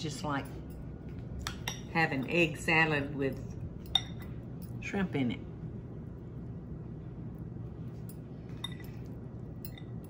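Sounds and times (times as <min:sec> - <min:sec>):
steady low hum: 0:00.0 - 0:10.0
metal spoon clinking on dish: 0:01.5 - 0:02.4, 0:03.4 - 0:04.8, 0:08.1 - 0:10.0.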